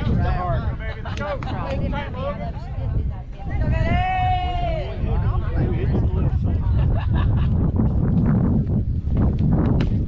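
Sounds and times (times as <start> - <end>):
steady low rumble: 0.0 - 10.0
long drawn-out shout: 3.7 - 5.0.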